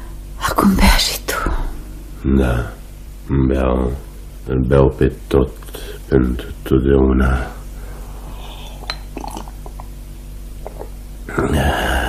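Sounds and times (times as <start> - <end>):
low recording hum: 0.0 - 12.0
person gulping and swallowing: 8.5 - 11.5.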